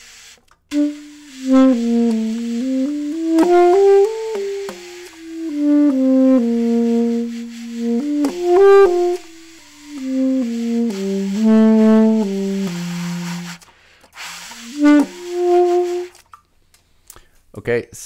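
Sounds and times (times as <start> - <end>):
soft saxophone melody: 0.7 - 16.2.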